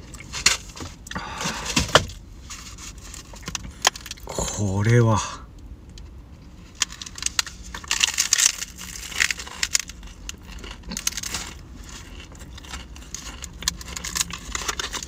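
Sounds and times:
crisp crust crunching: 0:00.0 - 0:04.7, 0:05.9 - 0:15.0.

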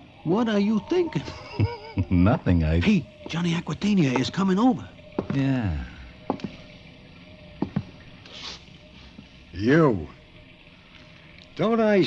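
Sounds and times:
heel clicks on hard floor: 0:05.2 - 0:05.4, 0:06.3 - 0:06.6, 0:07.6 - 0:07.9.

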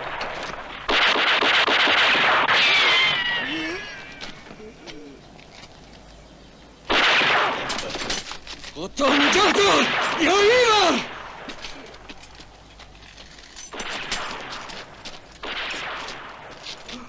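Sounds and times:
automatic rifle fire: 0:00.0 - 0:03.4, 0:06.9 - 0:08.0, 0:13.7 - 0:16.7
high wail falling in pitch: 0:02.5 - 0:04.4
short low cries: 0:03.0 - 0:05.2.

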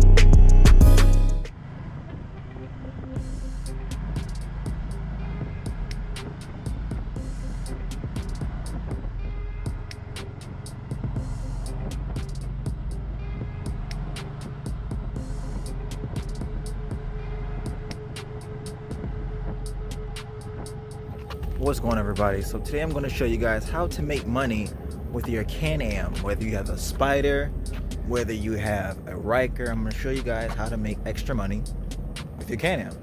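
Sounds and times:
background music: 0:00.0 - 0:33.0
motorcycle engine running: 0:01.5 - 0:33.0
road and wind noise: 0:01.5 - 0:33.0.

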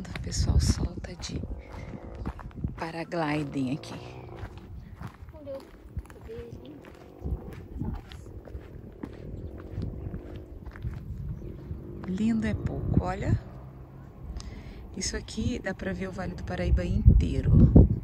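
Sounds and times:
footsteps on bare rock: 0:00.0 - 0:13.4
faint voices: 0:00.0 - 0:17.8
wind rumbling on microphone: 0:00.0 - 0:18.0.

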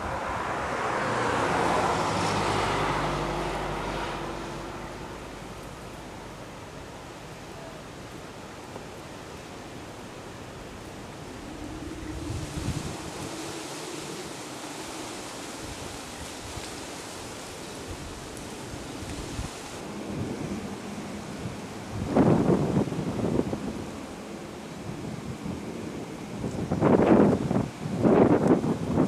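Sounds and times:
wind on microphone: 0:00.0 - 0:05.4, 0:10.6 - 0:29.0.

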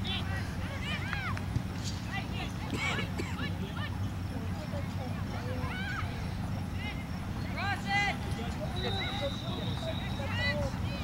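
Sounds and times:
distant shouts and calls: 0:00.0 - 0:11.0.

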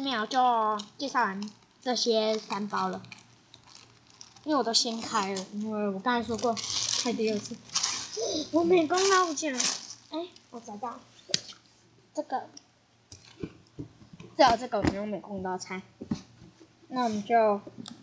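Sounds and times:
plastic wrapper crinkling: 0:00.1 - 0:10.9
woman talking: 0:14.4 - 0:15.8.

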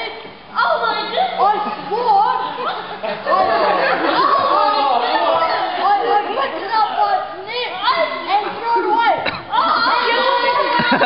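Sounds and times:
young people chattering: 0:00.0 - 0:11.0.

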